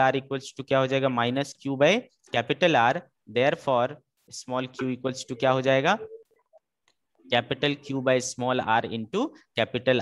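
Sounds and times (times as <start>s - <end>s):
man speaking: 0.0s - 6.2s, 7.2s - 10.0s.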